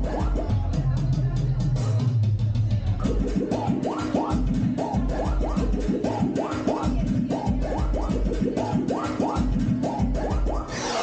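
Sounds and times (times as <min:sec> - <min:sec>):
dance music over sound system: 0:00.0 - 0:11.0.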